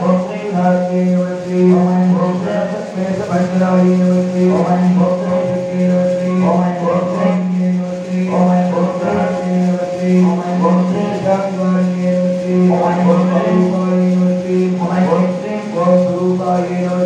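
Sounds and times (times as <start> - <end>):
devotional chanting: 0.0 - 17.0
steady drone: 0.0 - 17.0.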